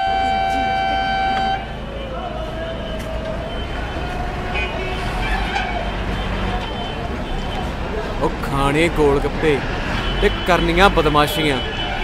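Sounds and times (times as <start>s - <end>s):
vehicle horn: 0.0s - 2.2s, 2.8s - 7.8s
busy background noise: 0.0s - 12.0s
faint voices: 0.0s - 12.0s.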